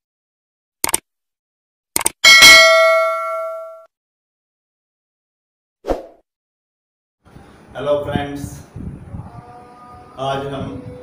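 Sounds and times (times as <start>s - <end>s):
quick clicks: 0.8s - 1.0s, 2.0s - 2.2s
notification bell ding: 2.3s - 3.9s.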